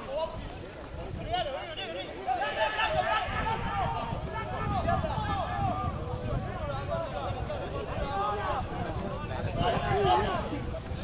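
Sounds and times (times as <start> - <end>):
voices shouting: 1.2 - 10.7.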